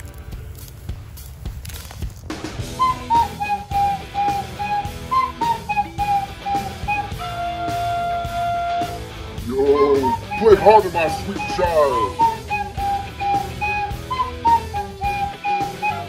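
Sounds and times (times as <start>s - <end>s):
backing music: 2.2s - 16.0s
flute melody: 2.6s - 16.0s.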